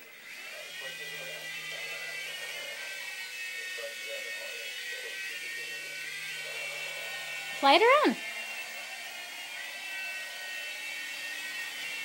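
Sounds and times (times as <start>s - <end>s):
toy helicopter motor whine: 0.0s - 12.0s.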